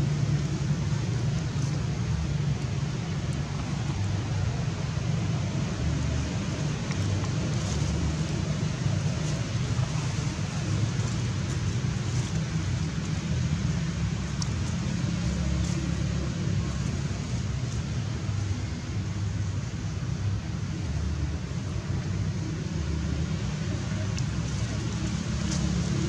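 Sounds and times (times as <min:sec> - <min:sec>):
low outdoor rumble: 0:00.0 - 0:26.0.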